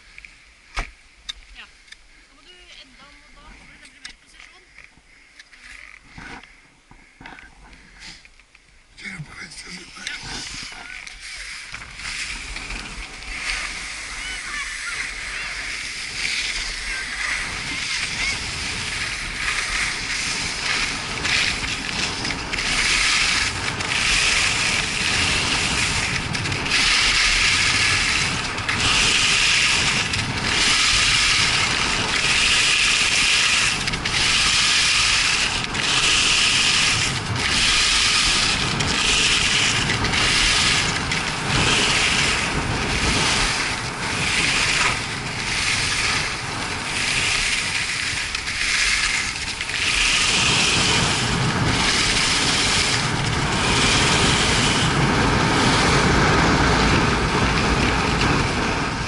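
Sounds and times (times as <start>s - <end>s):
skis scraping on snow: 1.6s - 8.3s, 9.0s - 59.0s.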